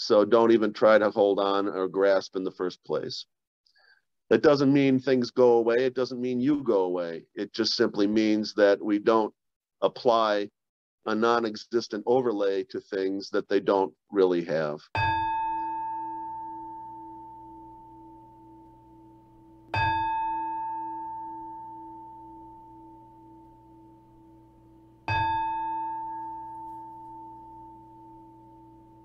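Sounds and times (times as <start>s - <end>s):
meditation bowl bell ringing: 15.0s - 29.0s.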